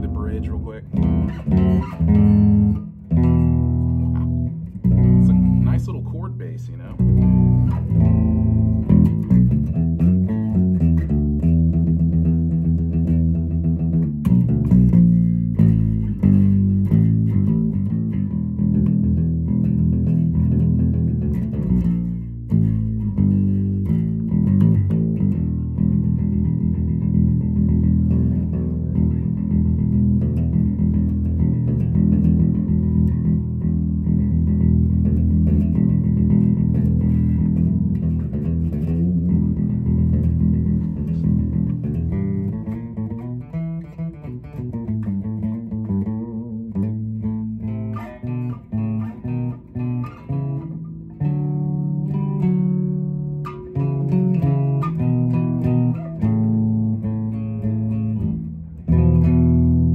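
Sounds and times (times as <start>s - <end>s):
electric bass riff: 0.0s - 59.9s.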